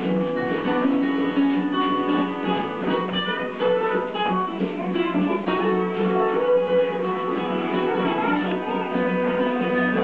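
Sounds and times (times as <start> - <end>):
guitar music: 0.0 - 10.0.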